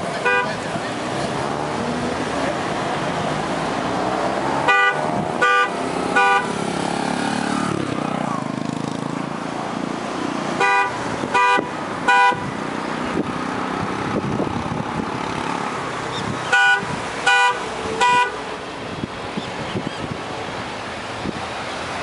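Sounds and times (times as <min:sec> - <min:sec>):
steady road noise: 0:00.0 - 0:22.0
vehicle horn honks: 0:00.2 - 0:00.6, 0:04.6 - 0:06.6, 0:10.6 - 0:12.5, 0:16.5 - 0:18.4.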